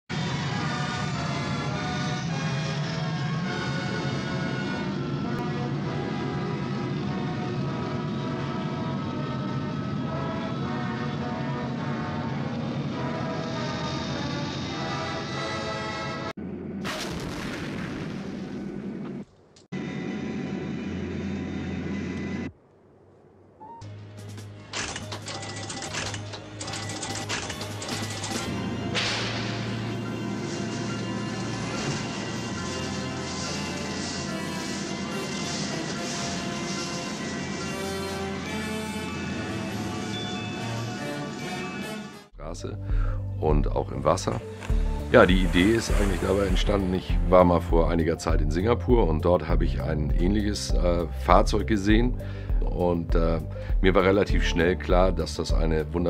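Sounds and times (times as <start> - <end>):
orchestral music: 0.1 - 16.4, 23.6 - 56.0
film sound effects noise: 0.1 - 56.0
sharp bangs: 16.4 - 19.2, 27.4 - 36.4.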